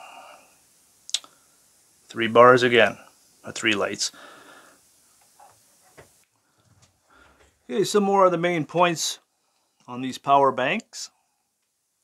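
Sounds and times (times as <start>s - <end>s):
person speaking: 2.1s - 4.2s, 7.6s - 9.2s
faint breath out: 4.1s - 4.9s.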